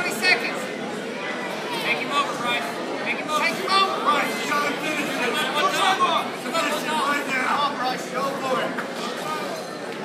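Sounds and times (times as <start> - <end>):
crowd chatter in a hall: 0.0 - 10.0.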